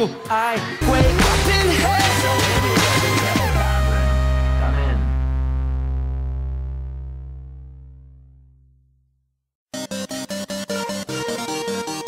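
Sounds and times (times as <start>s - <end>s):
background music deep bass note: 0.8s - 2.8s, 3.4s - 8.7s.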